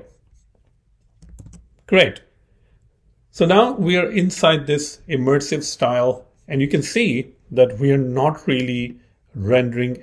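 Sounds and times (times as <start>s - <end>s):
computer keyboard clicks: 1.2s - 1.7s.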